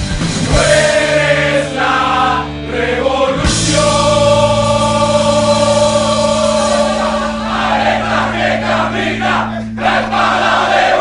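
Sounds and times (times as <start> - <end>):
choir singing held chords: 0.4 - 11.0.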